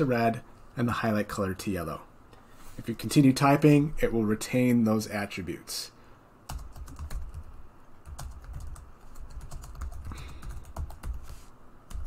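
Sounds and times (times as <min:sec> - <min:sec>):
typing on computer keyboard: 0:06.5 - 0:11.3.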